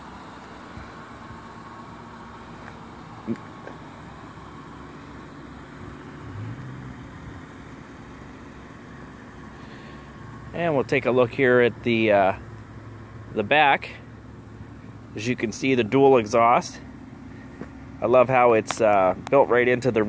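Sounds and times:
hum of motor vehicles: 0.0s - 20.0s.

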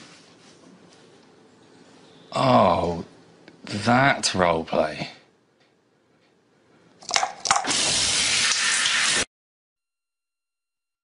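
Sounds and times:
shower water spraying: 7.6s - 9.3s.

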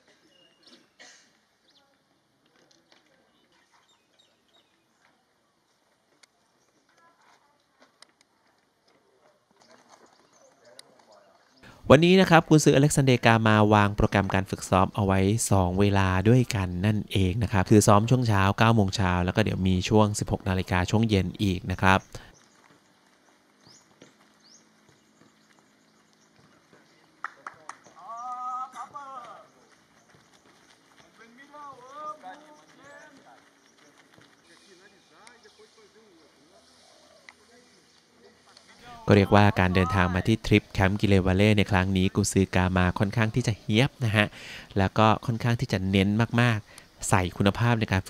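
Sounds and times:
faint outdoor background: 0.0s - 48.0s
person shouting: 28.0s - 29.5s, 38.8s - 40.3s.

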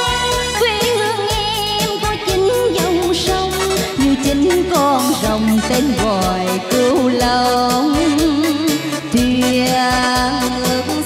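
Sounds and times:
bass and drum beat: 0.0s - 11.0s.

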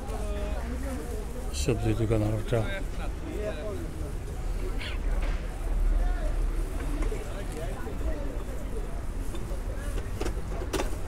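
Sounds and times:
passers-by talking: 0.0s - 11.0s
traffic rumble: 0.0s - 11.0s.

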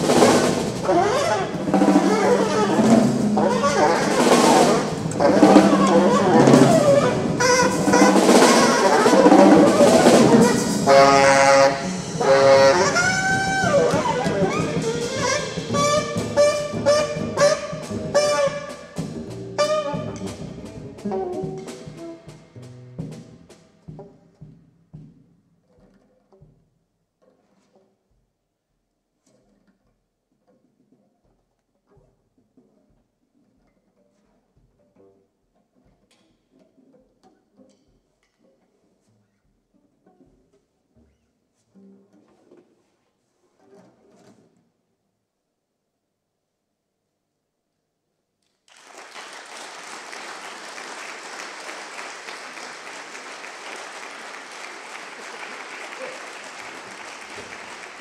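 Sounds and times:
alto saxophone: 0.0s - 23.2s, 50.8s - 58.0s
busy drumming: 0.0s - 25.2s, 48.7s - 58.0s
double bass: 0.0s - 26.6s.

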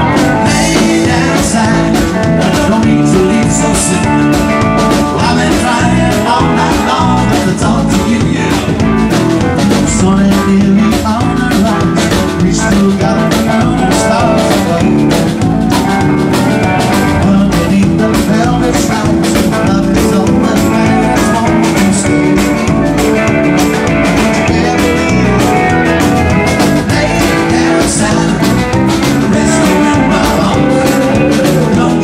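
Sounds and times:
acoustic guitar: 0.0s - 32.0s
congas: 0.0s - 32.0s
drum kit: 0.0s - 32.0s
electric guitar: 0.0s - 32.0s
lead vocal: 0.0s - 32.0s.

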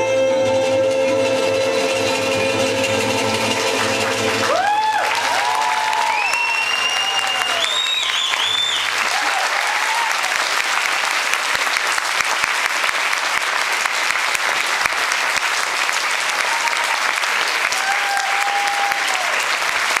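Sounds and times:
audience applauding: 3.0s - 20.0s
crowd cheer or whistle: 4.4s - 10.4s, 16.3s - 17.1s, 17.7s - 19.5s.

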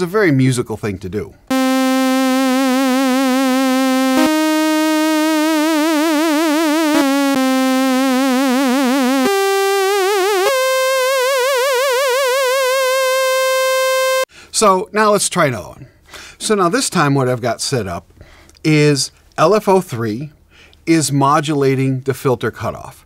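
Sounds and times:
synthesizer held notes with vibrato: 1.5s - 14.3s.

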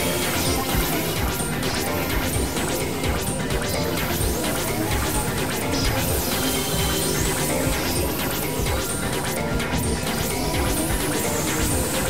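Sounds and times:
harsh industrial noise music: 0.0s - 12.0s.

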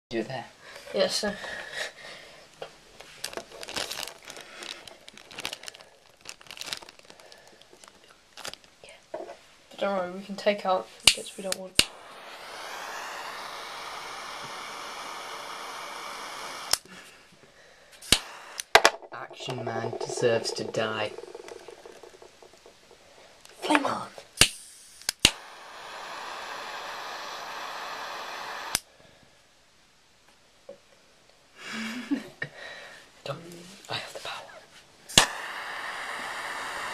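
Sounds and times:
rustling and crinkling: 3.0s - 9.5s
gas flame hissing: 11.0s - 17.1s, 17.9s - 23.8s, 24.4s - 28.9s, 35.1s - 36.9s
lighter clicking: 11.1s - 15.2s, 35.1s - 35.4s.

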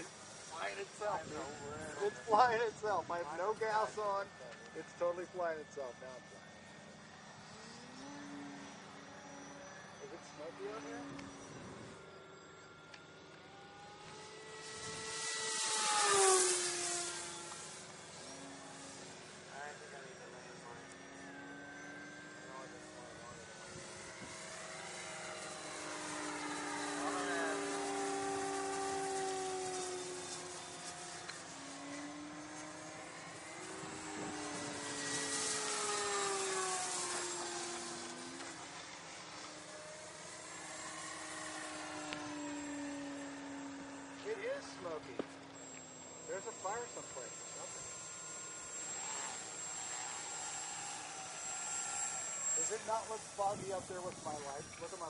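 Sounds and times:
model airplane propeller whines: 0.0s - 55.0s.

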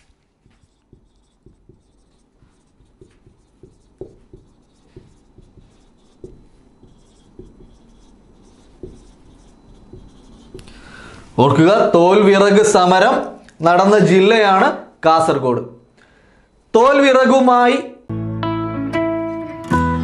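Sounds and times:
marker pen writing on whiteboard: 0.0s - 11.2s.

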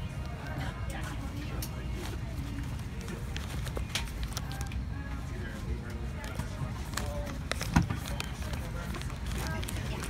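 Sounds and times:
faint voices: 0.0s - 10.0s
items rustling in a pouch: 0.3s - 4.8s, 5.6s - 10.0s.

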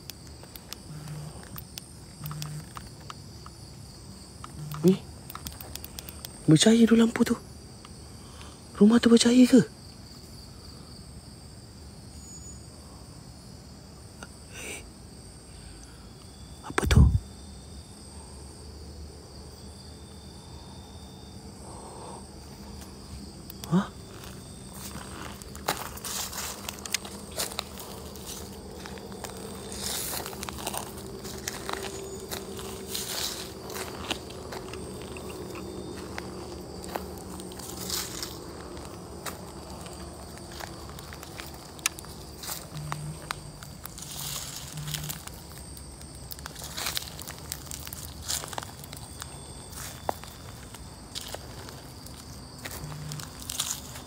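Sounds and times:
insects chirring: 0.0s - 54.0s
footsteps crunching through dry leaves: 24.0s - 54.0s.

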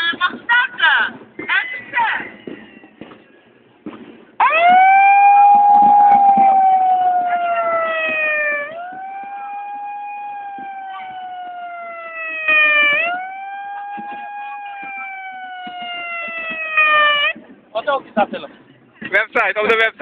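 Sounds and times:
siren wailing: 4.4s - 17.4s.

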